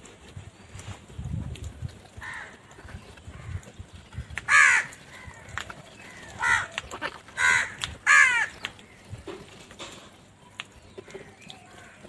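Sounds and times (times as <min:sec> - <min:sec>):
crows cawing: 0:02.2 - 0:09.1, 0:11.0 - 0:12.0.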